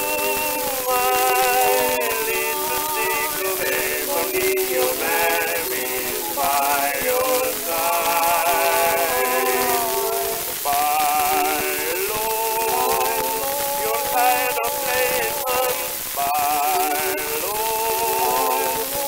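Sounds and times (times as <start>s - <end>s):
male tenor duet singing: 0.0s - 19.0s
record surface hiss: 0.0s - 19.0s.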